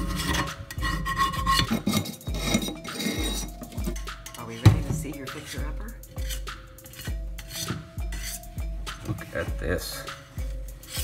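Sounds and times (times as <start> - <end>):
metal knocking on pan: 0.0 - 6.3
metal scraper scraping skillet: 0.0 - 9.2, 10.8 - 11.0.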